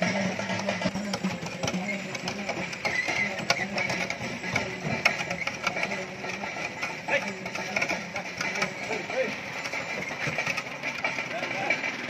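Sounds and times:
indistinct background voices: 0.0s - 11.9s
clicking and clatter: 0.0s - 12.0s.

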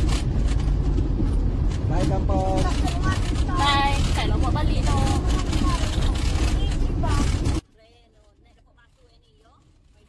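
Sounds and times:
tyres and engine rumble: 0.0s - 10.0s.

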